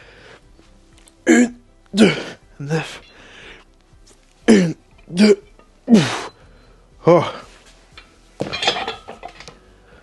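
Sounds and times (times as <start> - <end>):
metal weights clattering on floor: 8.4 - 9.5.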